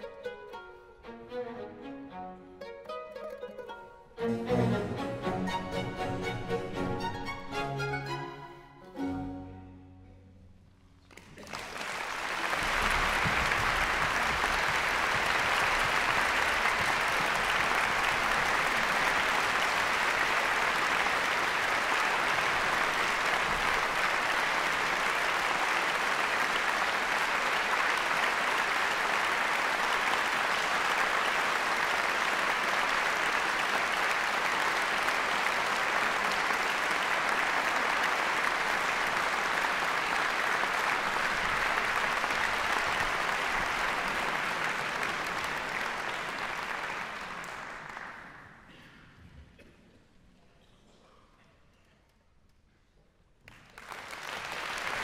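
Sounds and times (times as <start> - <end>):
audience applause: 3.6 - 8.2, 11.0 - 48.8, 53.5 - 55.0.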